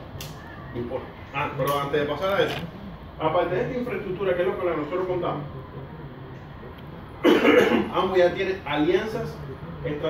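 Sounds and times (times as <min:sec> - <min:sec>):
person coughing: 0:07.2 - 0:07.9.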